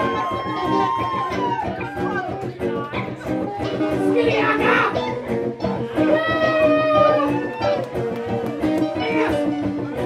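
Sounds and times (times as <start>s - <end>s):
amplified guitars: 0.0s - 10.0s.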